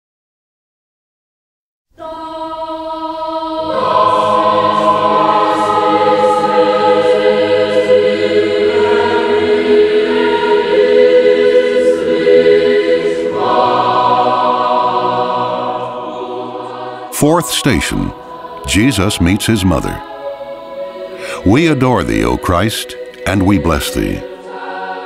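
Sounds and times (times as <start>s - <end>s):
choir singing sacred music: 1.9s - 25.0s.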